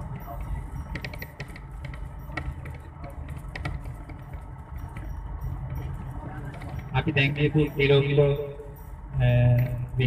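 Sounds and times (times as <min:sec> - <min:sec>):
vehicle rumble: 0:00.0 - 0:10.0.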